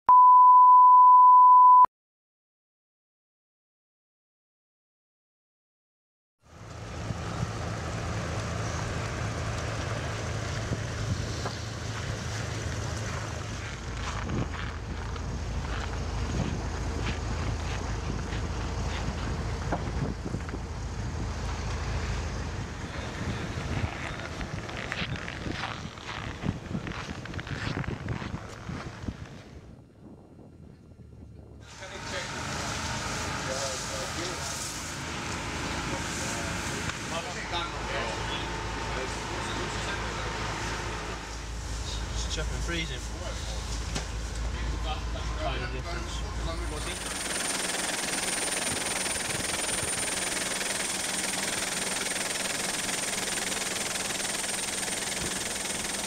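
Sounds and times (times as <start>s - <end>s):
steady low rumble: 8.3s - 28.5s, 35.6s - 47.4s
wind on microphone: 19.7s - 20.7s, 22.6s - 31.7s.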